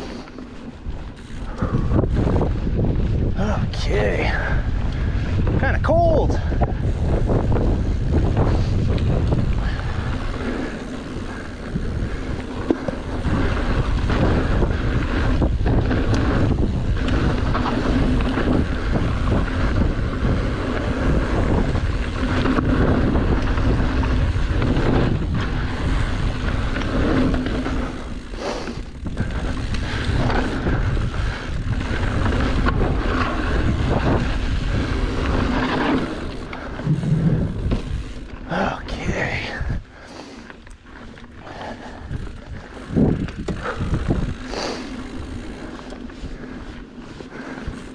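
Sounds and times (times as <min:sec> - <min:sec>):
wind buffeting microphone: 0:00.6 - 0:47.9
bike knocks and rattles: 0:07.2 - 0:38.4.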